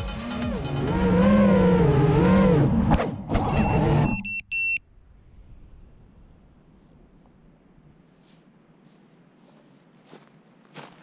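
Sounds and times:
drone motors whining: 0:00.0 - 0:04.4
high electronic beeps: 0:03.5 - 0:04.8.

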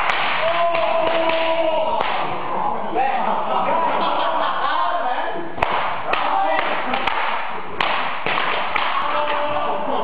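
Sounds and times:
crowd chattering and laughing: 0:02.2 - 0:07.8, 0:09.4 - 0:10.0.

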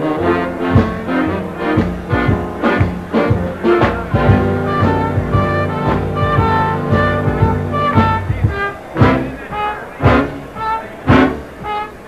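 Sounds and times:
big band orchestra playing: 0:00.0 - 0:12.0.

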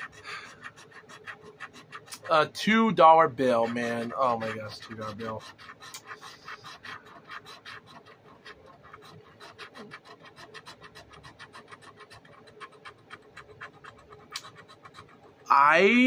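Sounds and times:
lottery ticket being scratched: 0:00.0 - 0:16.0.

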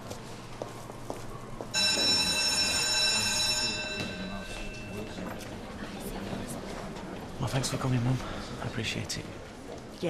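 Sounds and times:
low shop ambience: 0:00.0 - 0:10.0.

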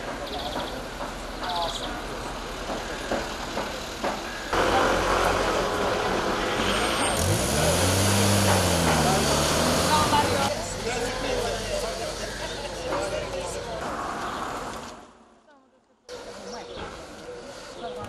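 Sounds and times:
road traffic noise: 0:00.0 - 0:18.0.

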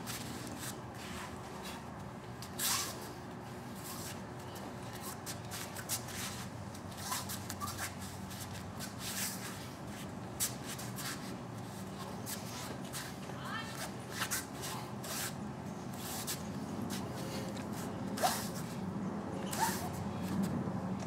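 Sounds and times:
bare feet sliding on rubber mats: 0:00.0 - 0:04.3
steady low hum: 0:00.0 - 0:21.0.

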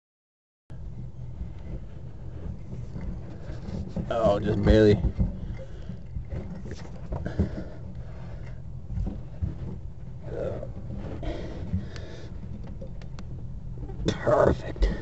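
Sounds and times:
steady low rumble: 0:00.7 - 0:15.0.

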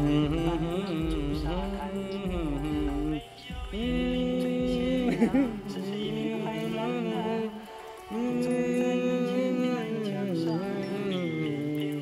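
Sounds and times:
person singing long note: 0:00.0 - 0:12.0.

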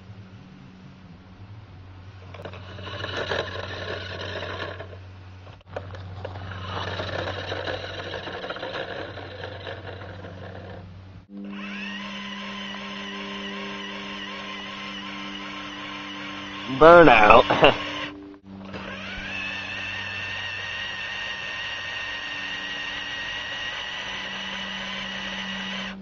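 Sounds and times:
toy car wheels on gravel: 0:02.2 - 0:10.9
toy car motor whirring: 0:02.2 - 0:26.0.

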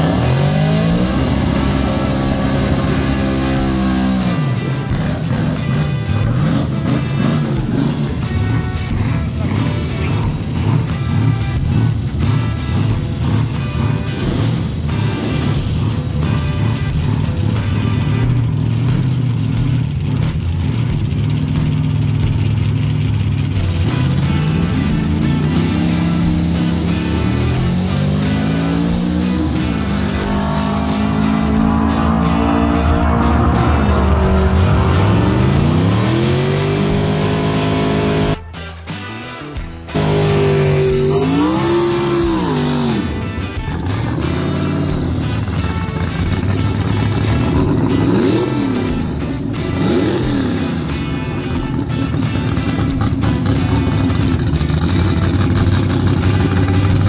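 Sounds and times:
car engine accelerating hard: 0:00.0 - 0:38.4, 0:39.8 - 0:57.0
background rock music: 0:00.0 - 0:57.0.

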